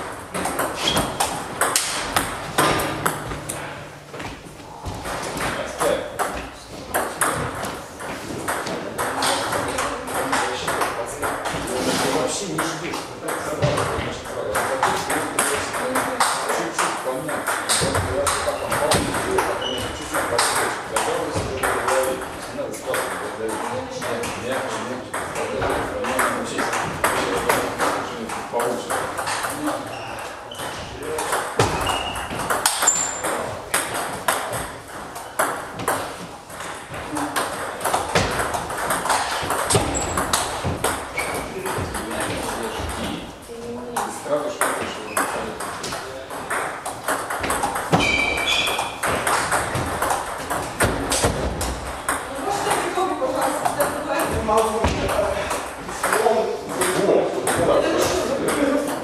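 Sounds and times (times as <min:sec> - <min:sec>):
table tennis ball hits: 0:00.0 - 0:04.0, 0:05.0 - 0:11.8, 0:12.5 - 0:22.3, 0:22.9 - 0:29.9, 0:30.5 - 0:43.3, 0:44.0 - 0:59.0.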